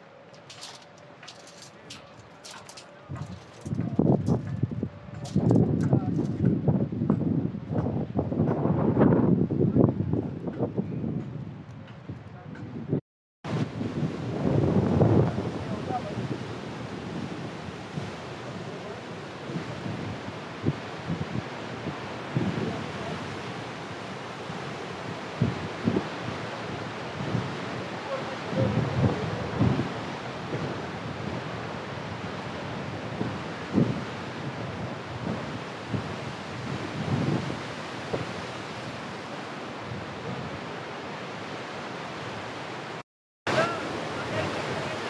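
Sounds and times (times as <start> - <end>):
wind buffeting microphone: 0.0 - 40.8
river rushing over rocks: 20.2 - 45.0.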